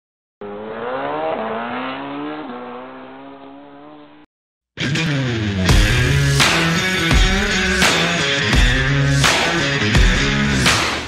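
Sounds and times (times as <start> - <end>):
vehicle engine accelerating: 0.4 - 4.3.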